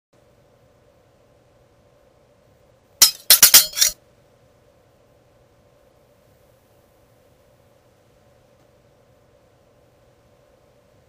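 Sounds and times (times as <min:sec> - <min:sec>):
sharp metallic blade clinks: 0:03.0 - 0:04.0.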